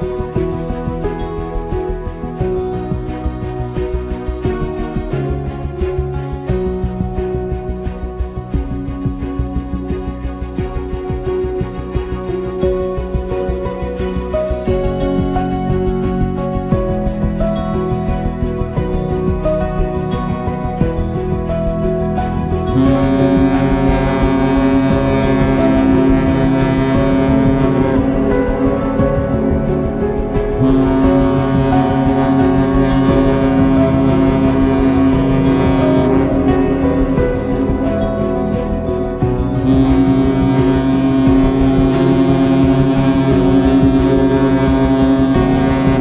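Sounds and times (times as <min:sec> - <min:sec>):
music playing: 0:00.0 - 0:46.0
ship's horn deep blast: 0:19.8 - 0:46.0.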